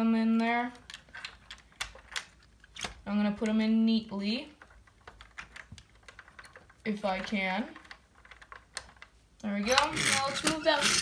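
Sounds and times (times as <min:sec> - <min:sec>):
plastic bricks clicking: 0:00.7 - 0:03.6, 0:04.5 - 0:11.0.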